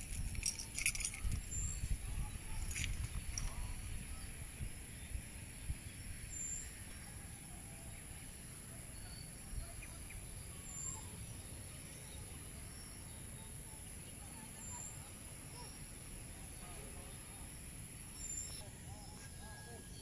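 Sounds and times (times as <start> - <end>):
wind rumble on microphone: 0.0 - 6.8
steady high-pitched hiss: 0.0 - 20.0.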